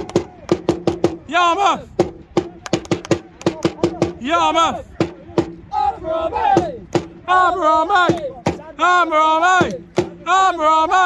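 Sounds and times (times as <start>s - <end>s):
crowd clapping a rhythm: 0.0s - 1.2s, 2.2s - 4.2s, 8.0s - 8.7s, 9.6s - 10.2s
crowd chanting: 3.2s - 11.0s.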